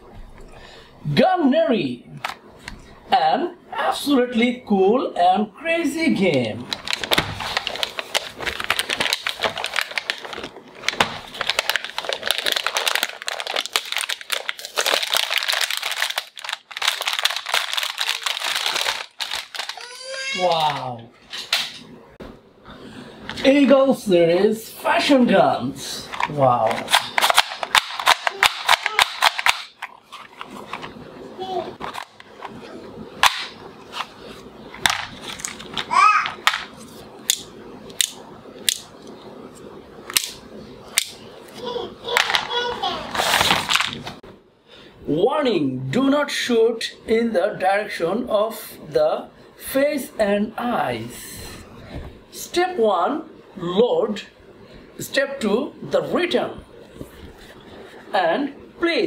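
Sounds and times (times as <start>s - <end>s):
plastic wrapping crinkling: 6.5s - 20.9s, 26.1s - 31.1s, 33.2s - 37.1s, 42.1s - 44.2s.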